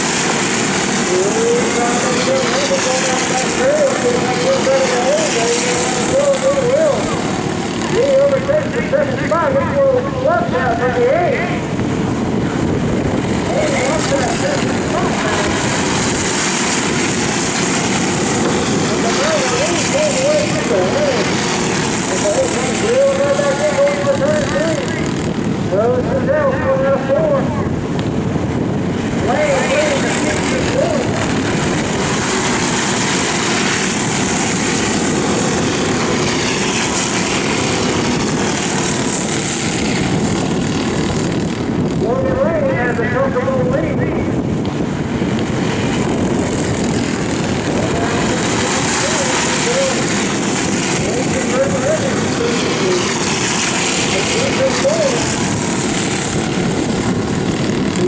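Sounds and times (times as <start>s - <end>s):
racing kart engines: 0.0s - 58.0s.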